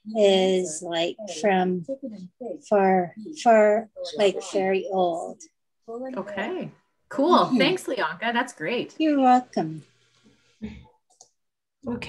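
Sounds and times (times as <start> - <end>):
woman speaking: 2.7 - 5.2, 6.2 - 9.8.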